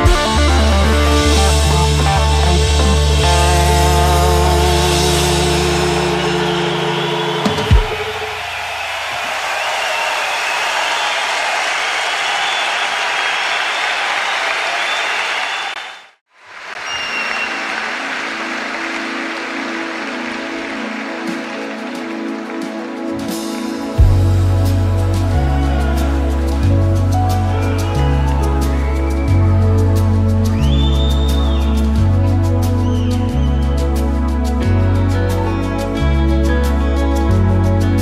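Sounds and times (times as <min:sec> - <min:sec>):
audience applause: 0:04.9 - 0:24.0.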